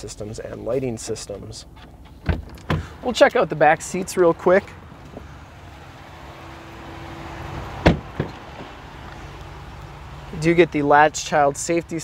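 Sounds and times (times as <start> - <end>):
truck door shutting: 1.7 - 3.3, 7.5 - 8.8.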